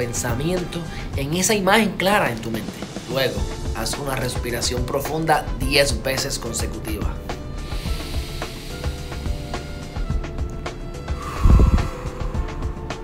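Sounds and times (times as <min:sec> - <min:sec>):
soft background music: 0:00.0 - 0:13.0
deep breathing into microphone: 0:07.5 - 0:13.0.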